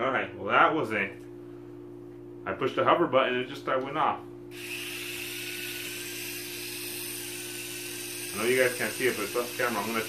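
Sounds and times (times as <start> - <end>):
toy drone motors whining: 4.5 - 10.0.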